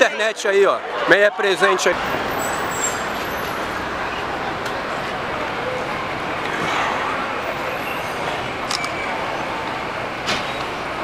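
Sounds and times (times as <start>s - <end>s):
road traffic: 0.0s - 11.0s.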